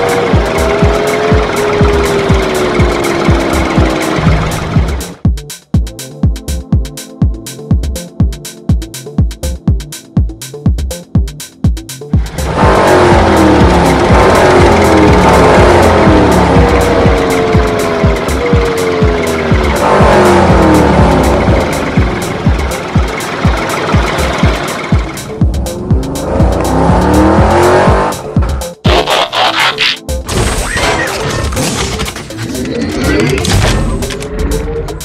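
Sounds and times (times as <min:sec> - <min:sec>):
background music with beat: 0:00.0 - 0:30.6, 0:31.4 - 0:35.0
car engine revving and passing: 0:12.2 - 0:30.0
tyres squealing: 0:28.8 - 0:30.0.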